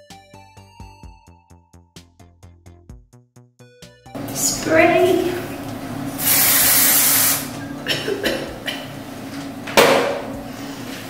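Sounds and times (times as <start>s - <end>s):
aerosol can spraying: 6.2s - 7.5s.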